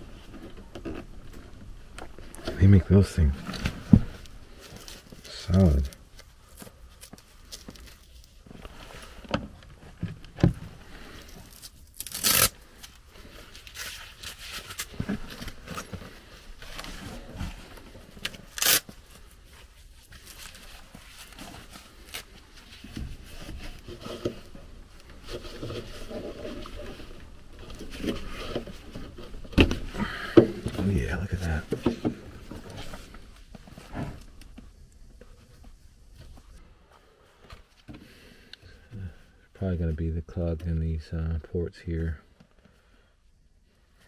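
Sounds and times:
parts scraping and rustling: 0.0s - 38.1s.

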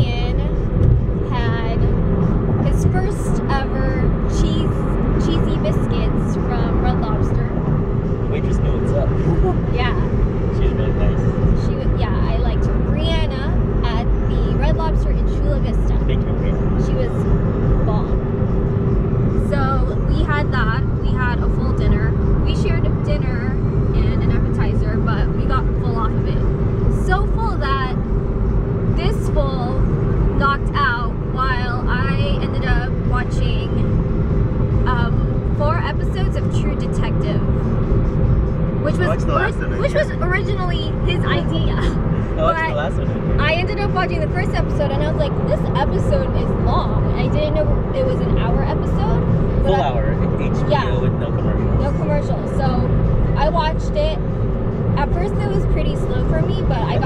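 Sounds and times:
people talking: 0.0s - 0.6s, 1.2s - 1.9s, 2.6s - 7.7s, 8.3s - 17.2s, 17.8s - 18.2s, 19.4s - 28.0s, 29.0s - 29.8s, 30.4s - 33.9s, 34.9s - 37.6s, 38.8s - 54.3s, 55.0s - 57.0s
car road and engine noise: 0.0s - 57.0s.

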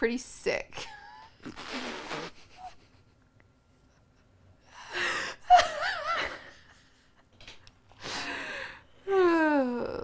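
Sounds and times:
woman laughing: 4.9s - 7.3s.

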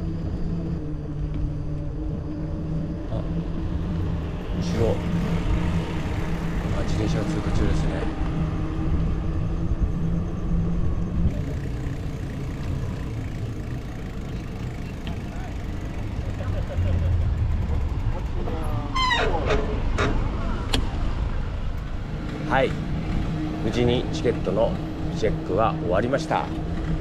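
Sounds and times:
road noise: 0.0s - 27.0s
vehicle engine humming: 0.0s - 27.0s
wind rumble: 0.0s - 27.0s.

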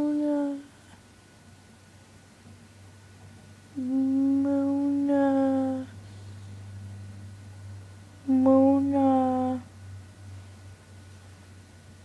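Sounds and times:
person humming a low note: 3.8s - 5.9s.

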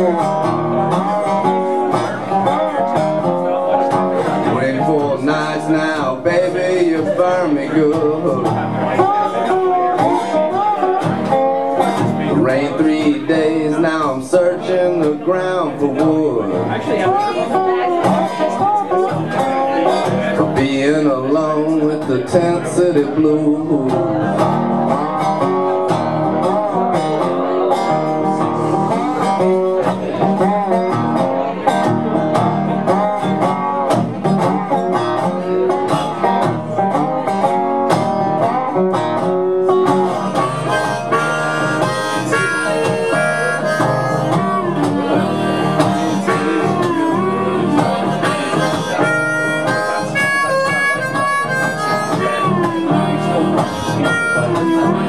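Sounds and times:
resonator guitar picked: 0.0s - 55.0s
harmonica playing: 39.2s - 55.0s.

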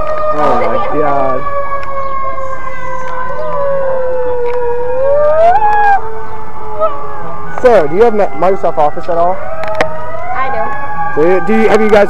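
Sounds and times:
siren dipping and rising: 0.0s - 12.0s
siren steady sinking tone: 0.0s - 12.0s.

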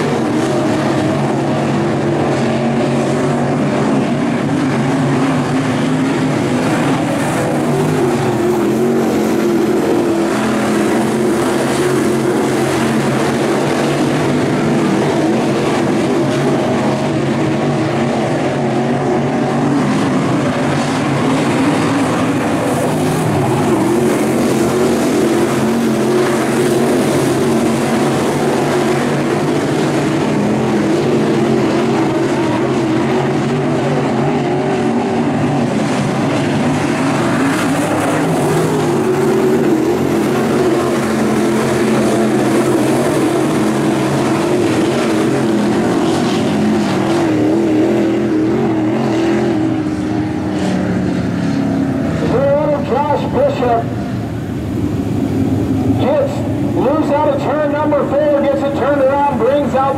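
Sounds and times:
race car engines running hard: 0.0s - 59.9s.

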